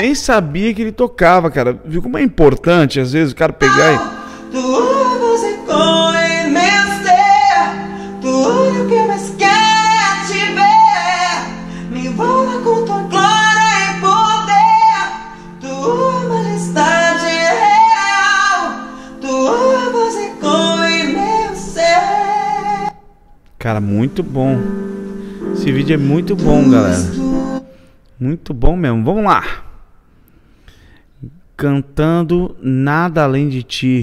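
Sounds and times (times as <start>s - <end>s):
man singing: 3.6s - 22.9s, 25.4s - 27.7s
piano chords: 3.6s - 27.9s.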